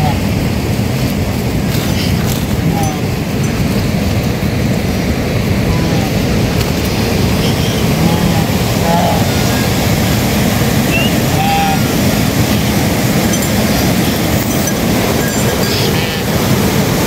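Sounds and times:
mountain stream rushing: 0:00.0 - 0:17.0
faint calls: 0:05.2 - 0:17.0.

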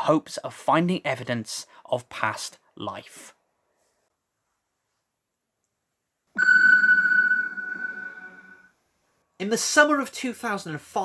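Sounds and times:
steady high ping: 0:06.4 - 0:08.8.

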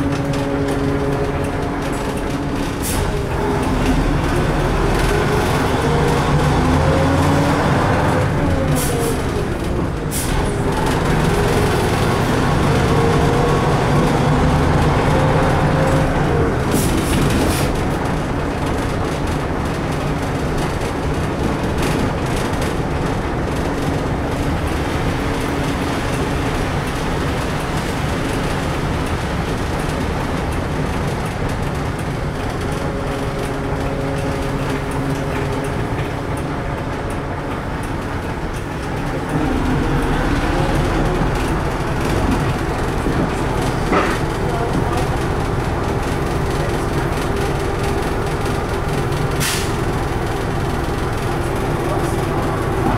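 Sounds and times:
rattle and road noise: 0:00.0 - 0:52.9.

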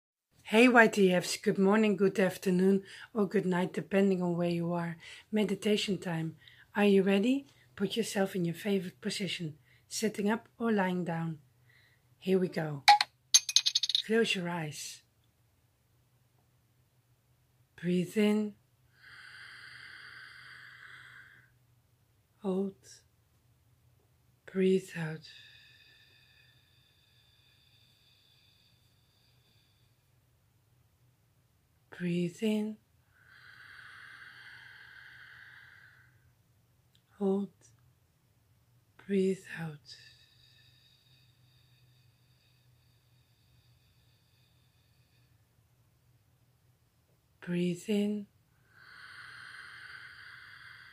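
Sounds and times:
woman breathing in through nose: 0:18.9 - 0:21.6, 0:25.3 - 0:30.2, 0:33.1 - 0:36.3, 0:40.0 - 0:45.5, 0:48.6 - 0:50.9.

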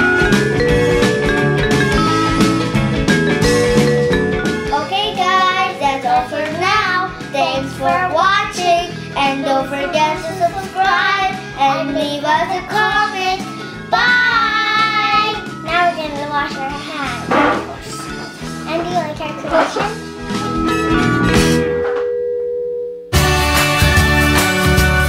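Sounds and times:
backing music track: 0:00.0 - 0:21.9, 0:23.2 - 0:25.0
young girls singing: 0:07.3 - 0:16.0.

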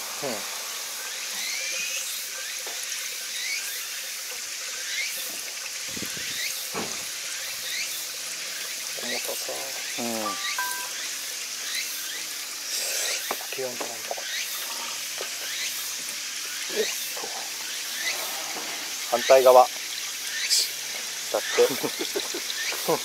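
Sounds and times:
fuel pouring and gurgling: 0:00.0 - 0:23.0.

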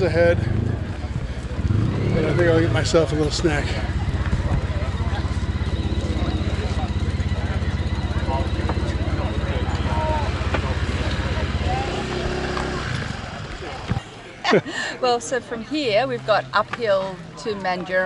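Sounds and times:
engine idling: 0:00.0 - 0:14.0
faint voices talking: 0:00.0 - 0:18.0.

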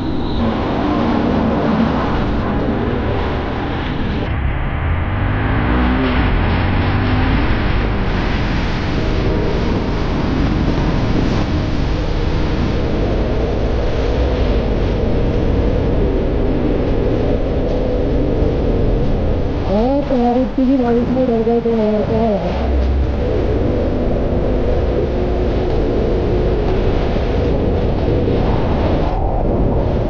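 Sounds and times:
vehicle engine and tyres on wet road: 0:00.0 - 0:21.3
wind on microphone: 0:00.0 - 0:30.0.

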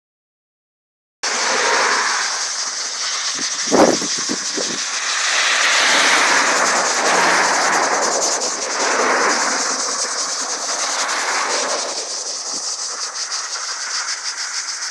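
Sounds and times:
cars passing on a road: 0:01.2 - 0:14.9.

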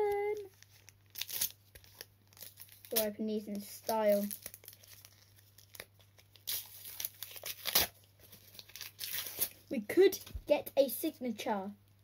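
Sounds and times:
wrapper tearing and crinkling: 0:00.0 - 0:09.7.

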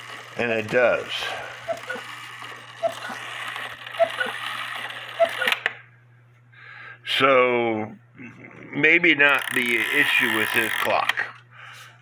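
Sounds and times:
clock mechanism whirring and clicking: 0:00.0 - 0:05.8, 0:09.2 - 0:11.4
two-note cuckoo clock calls: 0:01.7 - 0:02.1, 0:02.8 - 0:03.2, 0:03.8 - 0:05.6.

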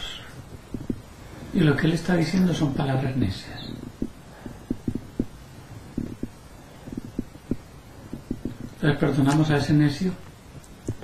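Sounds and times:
stomach gurgling: 0:03.7 - 0:08.8.

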